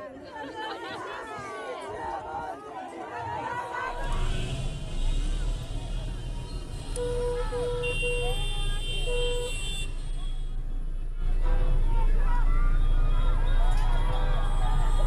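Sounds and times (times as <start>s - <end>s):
people shouting: 0.0s - 4.8s, 11.4s - 15.0s
traffic rumble: 3.1s - 15.0s
car horns honking: 4.1s - 10.7s.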